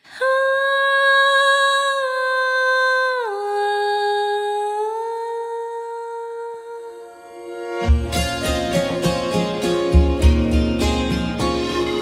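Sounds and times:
woman singing long held notes: 0:00.0 - 0:07.4.

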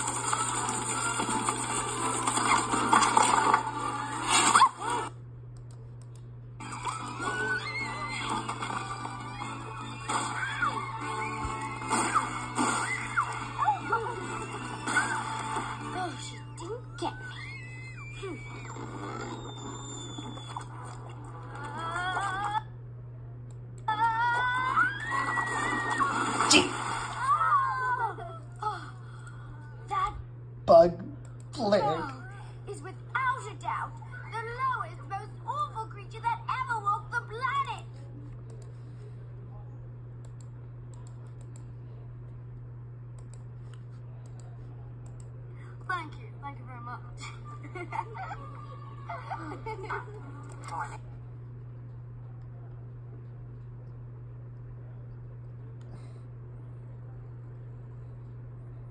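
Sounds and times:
steady low hum: 0:00.0 - 0:58.9
film music through laptop speakers: 0:06.6 - 0:16.5.

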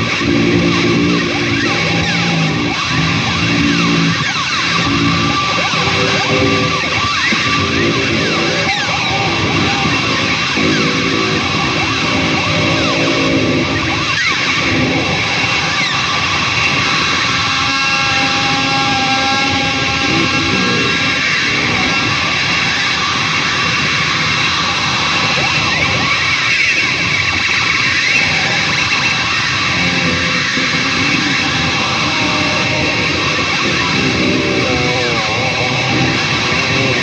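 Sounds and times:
amplified guitar noise with sliding tones: 0:00.0 - 0:37.0.

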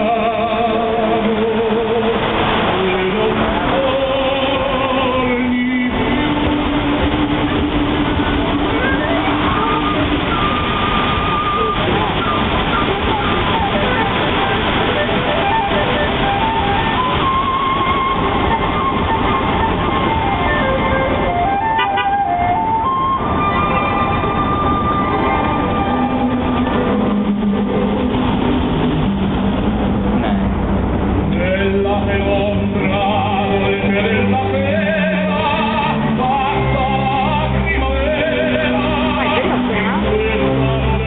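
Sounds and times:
fountain water jets rushing: 0:00.0 - 0:41.0
music over loudspeakers: 0:00.0 - 0:41.0.

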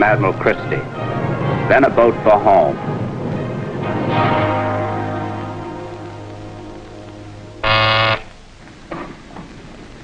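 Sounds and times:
orchestral chord: 0:03.8 - 0:08.3
intercom buzzer: 0:07.6 - 0:08.3.

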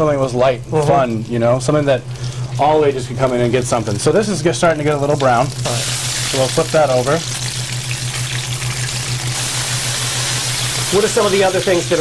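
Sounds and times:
food sizzling in oil: 0:01.1 - 0:12.0.

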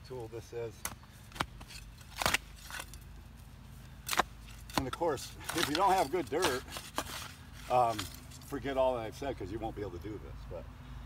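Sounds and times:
metal tool crunching into soil: 0:01.4 - 0:03.3, 0:03.9 - 0:08.8.

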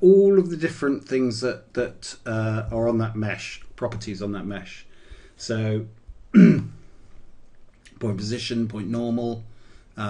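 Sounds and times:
man clearing his throat: 0:06.3 - 0:06.8.

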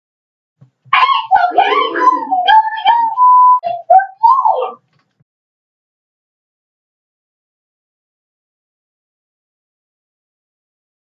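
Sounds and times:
high-pitched wailing cry: 0:01.0 - 0:03.2
short steady beep: 0:03.2 - 0:03.6.

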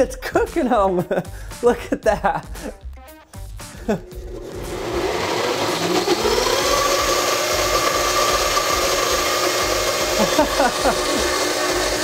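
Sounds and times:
blender motor running: 0:04.0 - 0:12.0.

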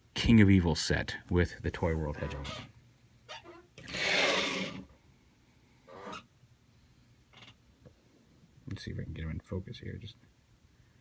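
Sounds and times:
plastic figures scraping on tabletop: 0:03.8 - 0:04.9.

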